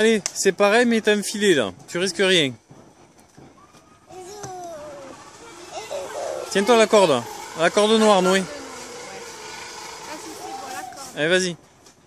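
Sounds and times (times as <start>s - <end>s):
steady outdoor hum: 0.0s - 12.0s
faint voices: 3.4s - 11.2s.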